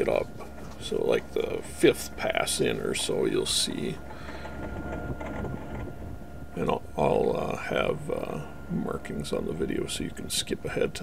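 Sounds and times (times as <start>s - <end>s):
faint steady whine: 0.0s - 11.0s
tractor diesel engine running: 0.0s - 11.0s.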